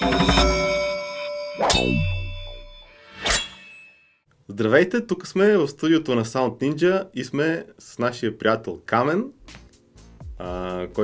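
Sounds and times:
high ringing tones: 0:00.0 - 0:04.3.

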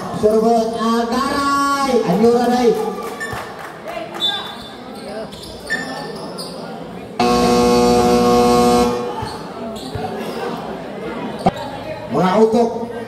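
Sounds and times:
basketball buzzer: 0:07.2 - 0:09.4
basketball bouncing on court: 0:09.1 - 0:10.1.

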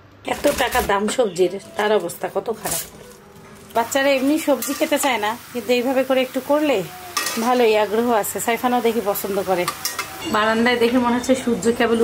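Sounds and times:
woman talking: 0:00.2 - 0:02.9, 0:03.7 - 0:12.0
metal spatula scraping a pan: 0:00.8 - 0:05.0, 0:07.1 - 0:07.7.

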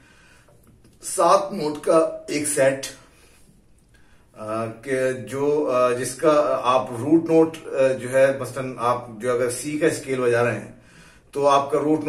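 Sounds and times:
man speaking: 0:01.0 - 0:03.1, 0:04.4 - 0:12.0.

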